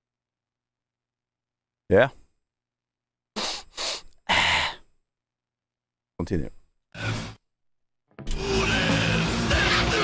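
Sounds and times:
man's breathy vocal sounds: 0:03.4 - 0:04.9.

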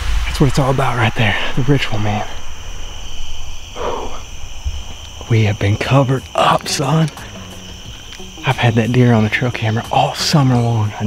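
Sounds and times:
low rumble: 0:00.0 - 0:06.4
insects chirring: 0:00.0 - 0:11.0
short breathy sound: 0:03.7 - 0:04.3.

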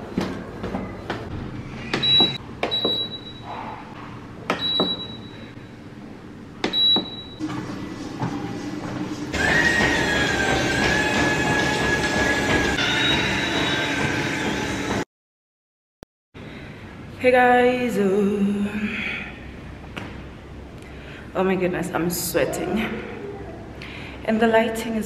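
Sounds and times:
treadmill motor whine: 0:00.0 - 0:03.7, 0:06.6 - 0:15.0.

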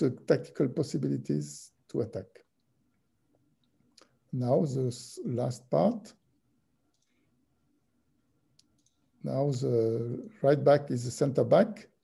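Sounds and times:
computer mouse clicks: 0:06.9 - 0:07.2, 0:08.6 - 0:09.1.

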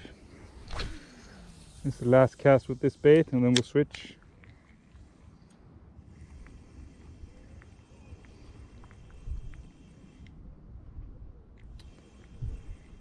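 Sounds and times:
small reel ticks: 0:00.0 - 0:10.6, 0:11.5 - 0:13.0
fishing reel whirring: 0:00.1 - 0:03.5, 0:11.6 - 0:13.0.

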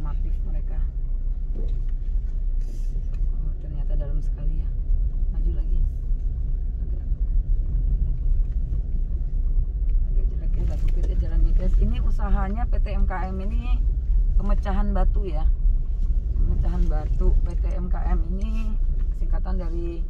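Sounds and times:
car engine and tyre rumble: 0:00.0 - 0:20.0.

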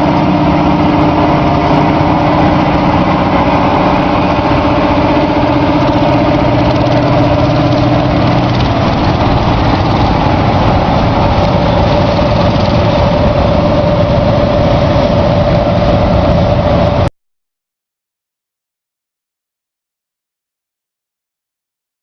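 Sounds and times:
tractor diesel engine droning: 0:00.0 - 0:17.1.

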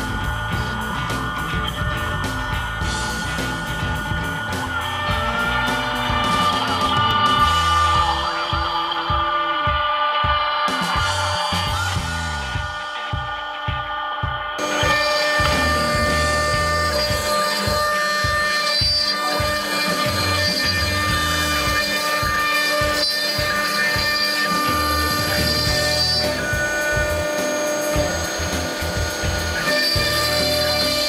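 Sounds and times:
background music with steady beat: 0:00.0 - 0:31.0
router bit cutting into wood: 0:14.6 - 0:31.0.

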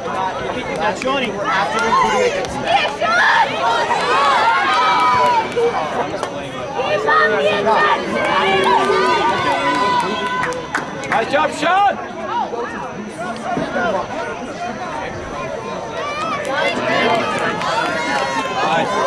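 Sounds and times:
voices calling out and talking: 0:00.0 - 0:19.0.

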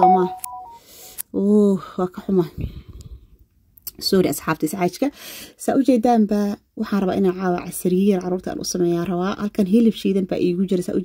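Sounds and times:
electronic beep tones: 0:00.0 - 0:00.8
person speaking: 0:00.0 - 0:00.8.

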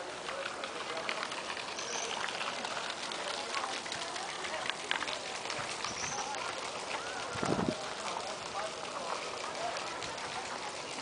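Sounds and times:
distant voices chattering: 0:00.0 - 0:11.0.

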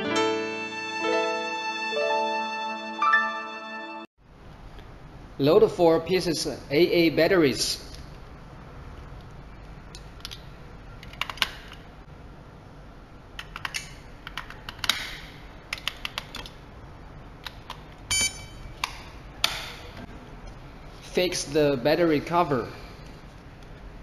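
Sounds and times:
short beep: 0:18.1 - 0:18.6.

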